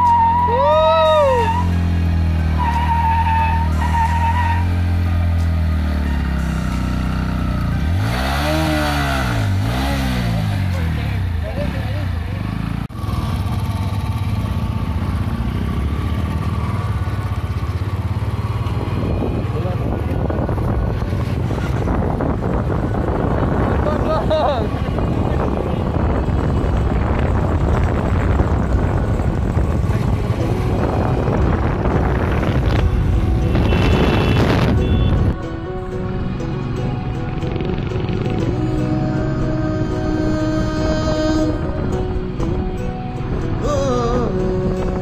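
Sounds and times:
motorcycle engine revving: 0:01.4 - 0:35.4, 0:36.4 - 0:42.3.

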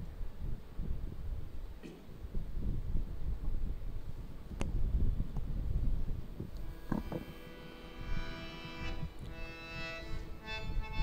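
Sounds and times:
harmonium playing a chord: 0:06.6 - 0:11.0
short knocks: 0:06.7 - 0:07.5.

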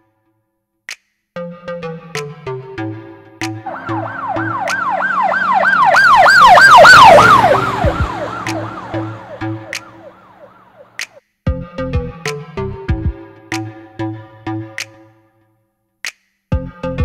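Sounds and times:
electronic music: 0:03.7 - 0:11.0
police siren wailing: 0:03.7 - 0:11.0.

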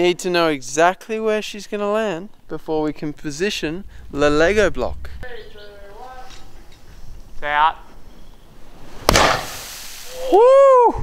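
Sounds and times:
low rumble: 0:02.6 - 0:07.4.

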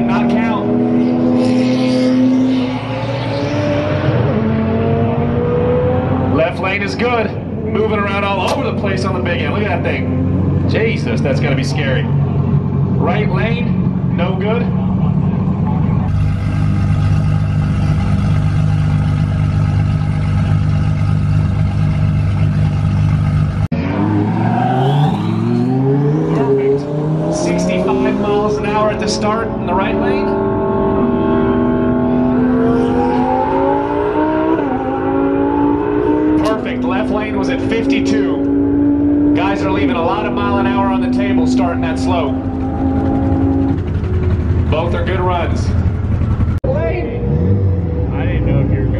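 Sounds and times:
race car engines accelerating: 0:00.0 - 0:48.9.

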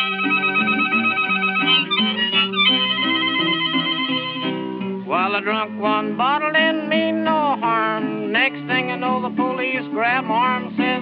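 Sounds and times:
old-time string-band music: 0:00.0 - 0:11.0.

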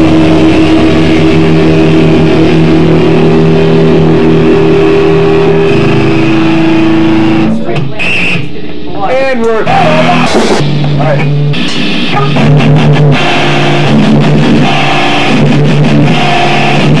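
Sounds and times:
distorted electric guitar chord: 0:00.0 - 0:17.0.

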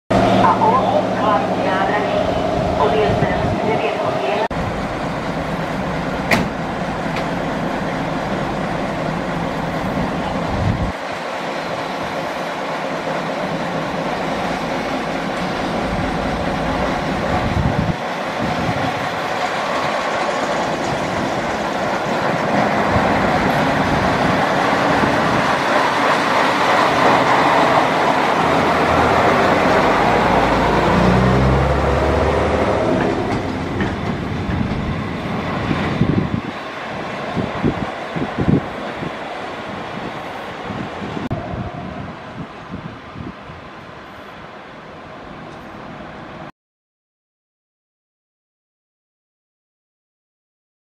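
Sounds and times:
railcar engines running: 0:00.1 - 0:46.5.

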